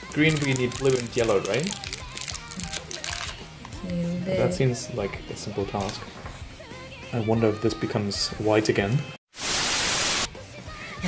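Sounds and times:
plastic packets crinkling: 0.0 - 3.4
soft background music: 0.0 - 9.2.

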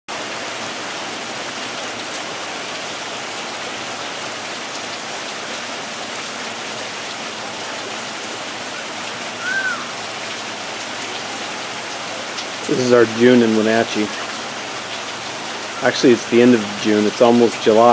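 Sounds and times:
rain falling on wet street: 0.1 - 17.9.

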